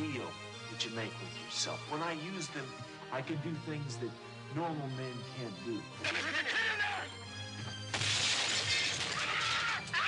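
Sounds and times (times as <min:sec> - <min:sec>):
window glass smashing: 0:07.9 - 0:10.0.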